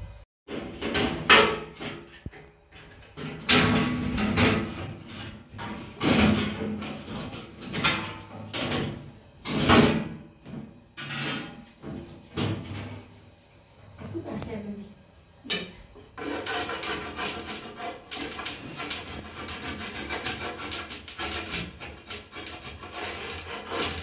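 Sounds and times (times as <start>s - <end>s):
rolling pin on wooden board: 16.2s - 24.0s.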